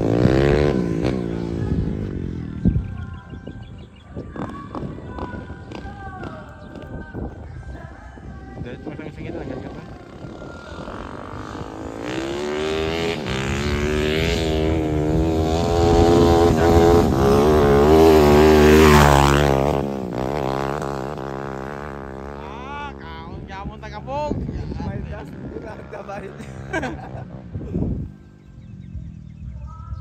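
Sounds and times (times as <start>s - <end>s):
dirt bike engine: 0.0s - 3.2s, 8.9s - 30.0s.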